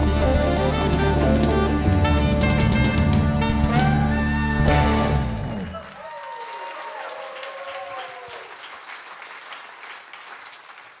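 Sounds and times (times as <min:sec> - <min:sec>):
audience applause: 0:01.0 - 0:11.0
audience cheering: 0:02.4 - 0:11.0.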